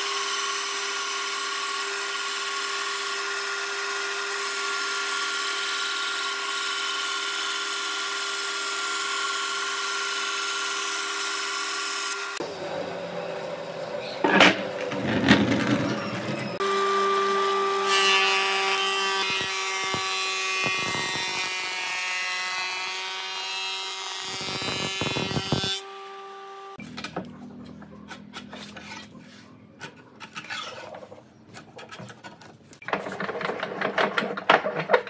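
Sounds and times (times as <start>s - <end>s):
band saw cutting wood: 0.0s - 12.6s, 16.0s - 26.8s
wood planer motor running: 0.0s - 13.1s, 15.6s - 26.8s.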